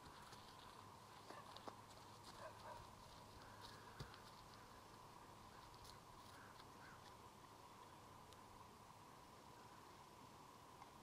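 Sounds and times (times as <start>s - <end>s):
faint steady hum: 0.0s - 11.0s
horse hooves walking on grass: 0.0s - 11.0s.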